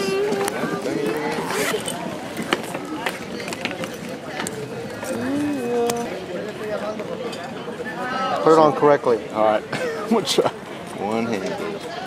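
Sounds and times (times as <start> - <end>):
voices talking in background: 0.0 - 12.0
zipper pulled open: 1.1 - 2.0.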